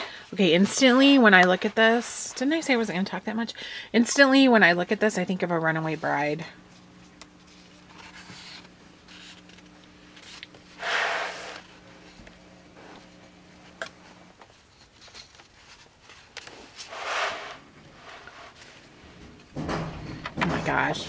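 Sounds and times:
washing machine humming: 0:00.0 - 0:14.5, 0:16.6 - 0:21.0
pages turning rustle: 0:07.4 - 0:10.7, 0:14.5 - 0:17.6.

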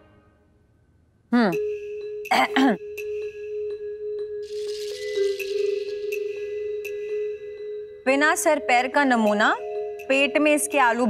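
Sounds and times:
person clearing throat: 0:02.3 - 0:02.9.

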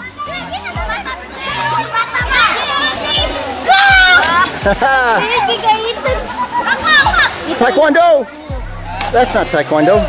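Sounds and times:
children shouting and chattering: 0:00.0 - 0:10.0
music with repeating beat: 0:02.0 - 0:05.3, 0:08.4 - 0:10.0
loud high-pitched shout: 0:02.2 - 0:04.5.

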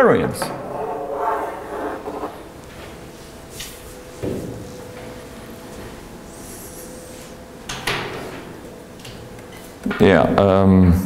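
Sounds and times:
faint steady hum: 0:00.0 - 0:11.0
rustling scrape: 0:00.7 - 0:02.5.

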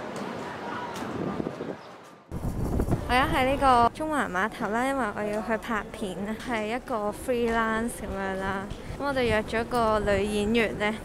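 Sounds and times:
wind buffeting microphone: 0:00.9 - 0:04.1, 0:07.2 - 0:11.0.

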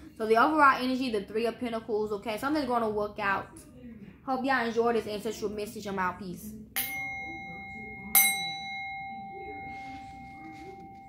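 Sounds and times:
metal bell ringing: 0:06.8 - 0:11.0.

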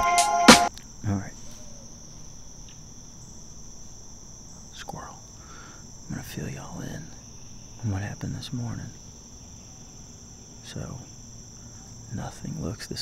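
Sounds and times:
insects chirring: 0:00.0 - 0:13.0.

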